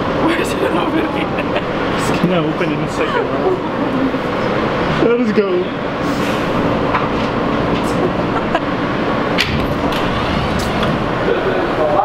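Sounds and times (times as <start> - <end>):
subway car rumble: 0.0 - 12.0
low hum: 9.2 - 12.0.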